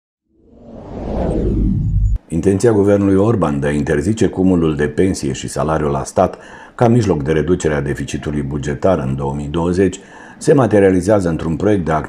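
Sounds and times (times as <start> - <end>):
deep rising whoosh: 0.3 - 2.2.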